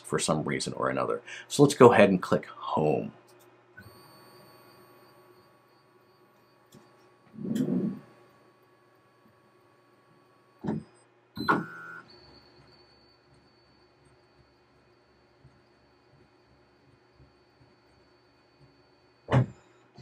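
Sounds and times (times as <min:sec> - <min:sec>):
high stepper motor whine: 0:03.8 - 0:19.6.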